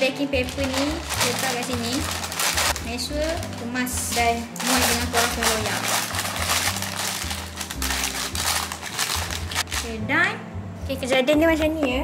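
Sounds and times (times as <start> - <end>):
background music: 0.0 - 12.0
baking paper crinkling: 0.4 - 9.9.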